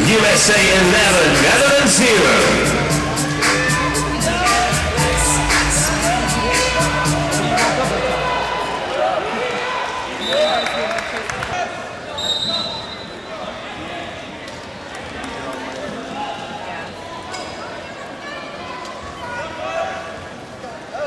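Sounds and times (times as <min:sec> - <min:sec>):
crowd and player voices: 0:00.0 - 0:21.0.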